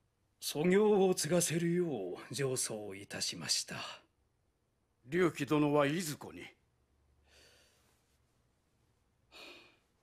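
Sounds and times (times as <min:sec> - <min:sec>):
short breath out: 0:09.3 - 0:09.8.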